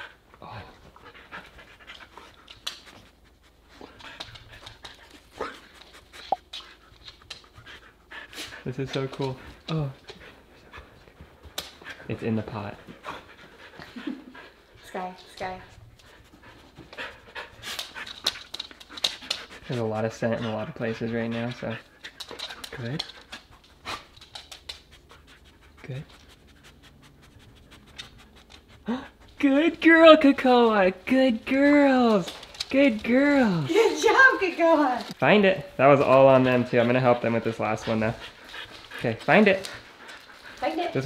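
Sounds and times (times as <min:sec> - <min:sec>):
dog panting and sniffing: 0:00.0 - 0:41.0.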